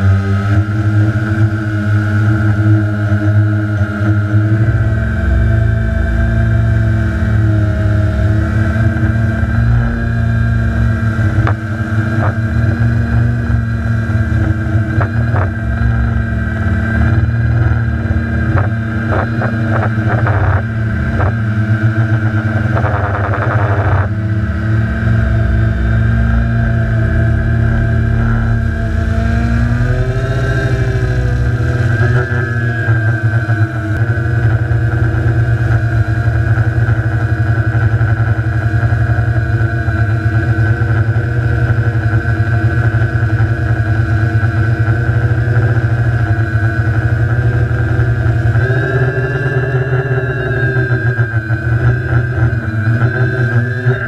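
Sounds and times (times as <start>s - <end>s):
quadcopter motors droning: 0.0s - 54.0s.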